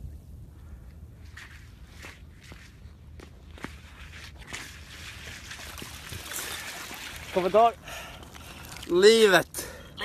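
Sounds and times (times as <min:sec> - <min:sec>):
wind rumble on microphone: 0:00.0 - 0:07.3.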